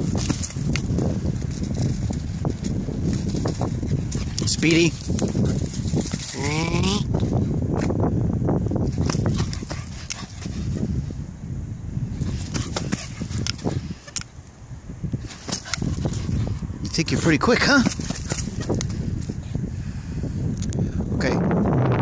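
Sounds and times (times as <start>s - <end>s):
footsteps running on dirt: 0.0s - 6.6s, 12.2s - 13.8s, 15.2s - 19.4s
low microphone rumble: 0.0s - 14.0s.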